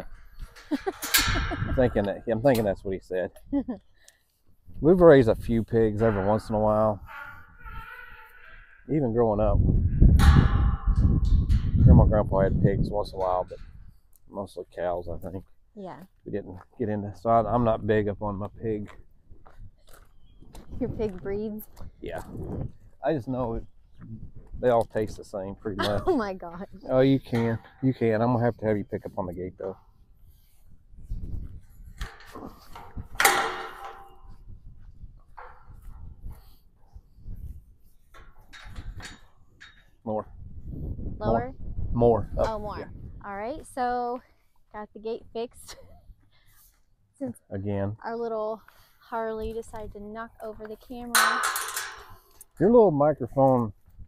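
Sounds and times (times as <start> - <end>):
metal gate clanking: 0.0 - 2.7, 5.7 - 8.8, 10.1 - 12.1, 26.9 - 28.2, 32.0 - 34.4, 38.1 - 40.0, 51.1 - 52.4
wind rumbling on microphone: 0.0 - 3.7, 4.6 - 14.1, 17.4 - 43.8
metallic clang ringing: 0.5 - 2.1, 51.2 - 52.1.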